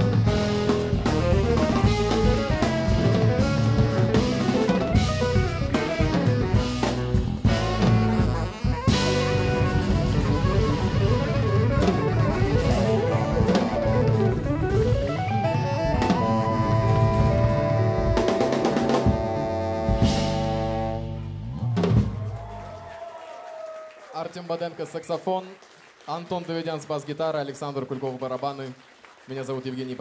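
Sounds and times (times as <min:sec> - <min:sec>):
jazz-fusion band playing: 0:00.0 - 0:22.6.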